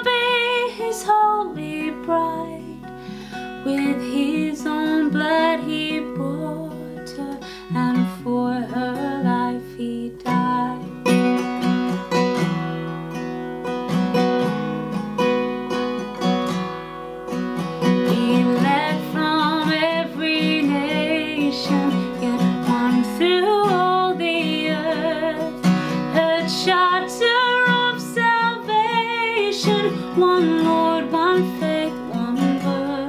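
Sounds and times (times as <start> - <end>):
woman singing a hymn: 0.0 - 2.9, 3.6 - 10.9, 18.0 - 33.0
strummed acoustic guitar: 0.0 - 33.0.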